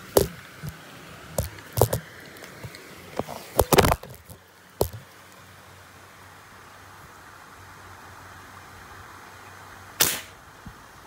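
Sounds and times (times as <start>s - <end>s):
faint background hiss: 0.0s - 11.0s
rubber-powered spear snapping: 10.0s - 10.3s.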